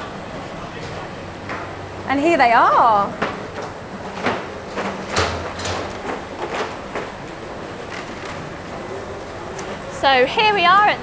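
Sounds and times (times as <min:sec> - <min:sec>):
factory machinery hum: 0:00.0 - 0:11.0.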